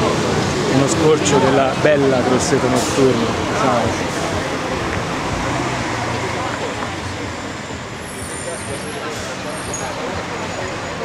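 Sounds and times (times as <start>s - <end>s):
people chattering: 0.0s - 11.0s
road traffic passing: 0.0s - 11.0s.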